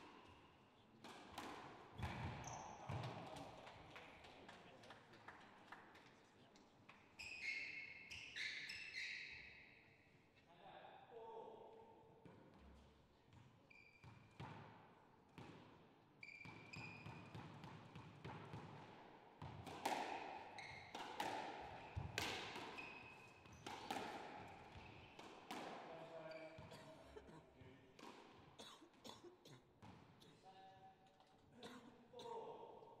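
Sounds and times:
squash ball knocking: 17.0s - 22.8s, 23.4s - 25.8s
shoes squeaking on wooden floor: 26.2s - 27.2s.

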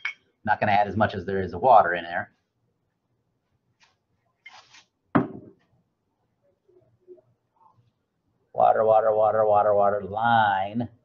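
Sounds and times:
container knocking on desk: 5.2s - 5.6s.

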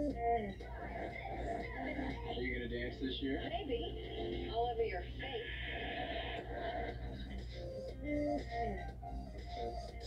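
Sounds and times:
music through tv speaker: 0.0s - 10.0s
steady low hum: 0.0s - 10.0s
television dialogue: 0.0s - 10.0s.

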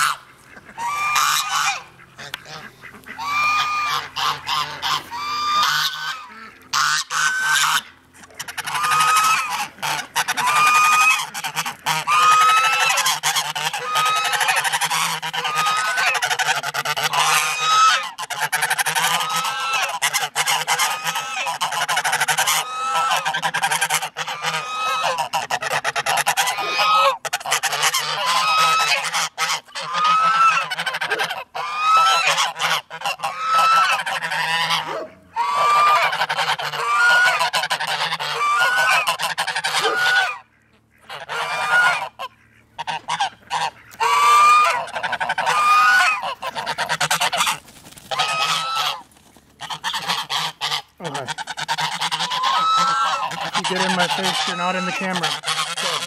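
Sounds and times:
geese honking: 0.0s - 56.0s.

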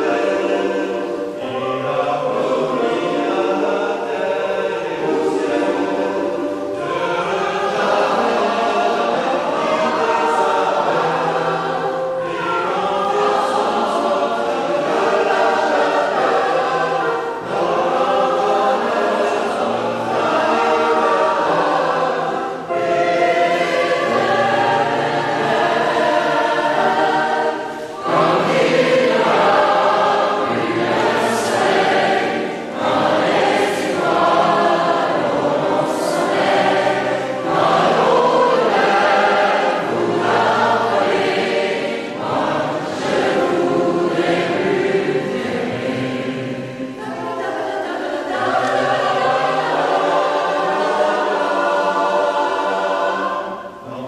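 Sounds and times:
mixed choir singing: 0.0s - 54.0s.

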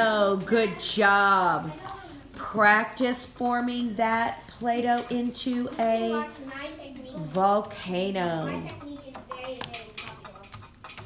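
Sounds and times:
children's voices murmuring: 0.3s - 2.7s, 5.4s - 11.0s
plastic objects clicking on tables: 4.7s - 6.0s, 8.1s - 11.0s.

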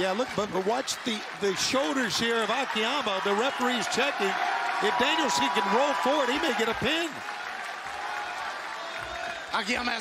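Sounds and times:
arena crowd noise: 0.0s - 10.0s
crowd clapping: 0.0s - 10.0s.

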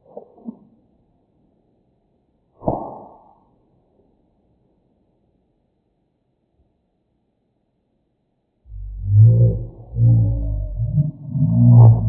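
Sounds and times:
slowed-down man's voice droning: 8.7s - 12.0s.

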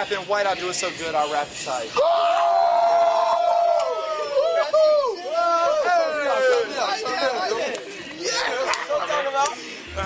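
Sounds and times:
men chatting: 0.0s - 2.1s, 4.1s - 10.0s.

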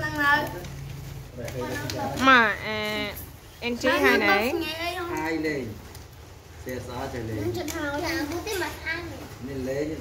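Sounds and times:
child speaking: 4.0s - 5.2s, 7.5s - 9.4s.

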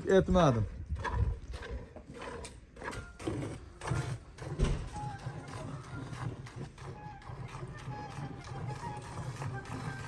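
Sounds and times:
milk squirting into a metal pail: 0.1s - 10.0s.

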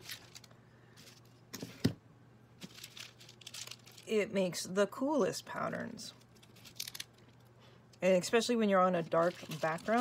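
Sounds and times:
paper crinkling: 0.0s - 1.4s, 2.6s - 4.2s, 6.2s - 7.4s, 9.0s - 10.0s.

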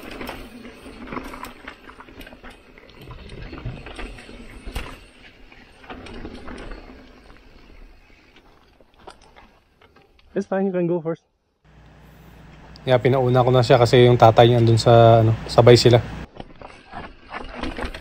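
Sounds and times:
bike rattling over bumps: 0.0s - 10.2s, 13.0s - 18.0s
bike tyres on gravel: 0.0s - 10.4s, 11.7s - 18.0s.

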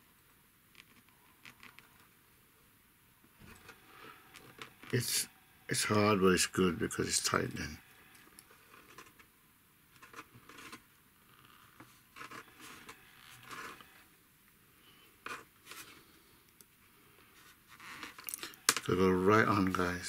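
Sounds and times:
plastic tubing rubbing and scraping: 10.0s - 10.8s.

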